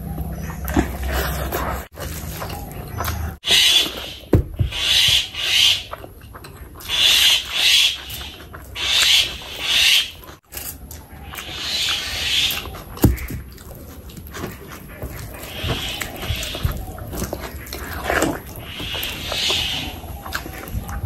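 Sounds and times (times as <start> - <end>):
chewing rumble: 0.0 - 21.0
wet squelches of eating: 0.0 - 21.0.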